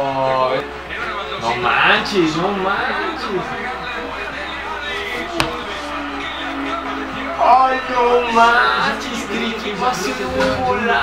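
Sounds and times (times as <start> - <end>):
stadium crowd noise: 0.6 - 11.0
sharp knock: 5.4 - 5.8.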